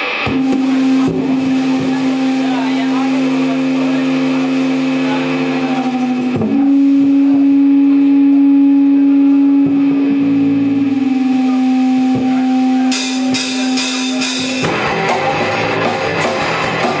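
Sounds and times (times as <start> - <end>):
electric guitar droning note: 0.0 - 17.0.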